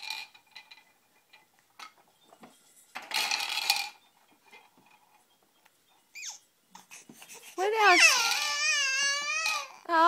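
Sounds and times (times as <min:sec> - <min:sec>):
baby squealing: 0:06.1 - 0:09.9.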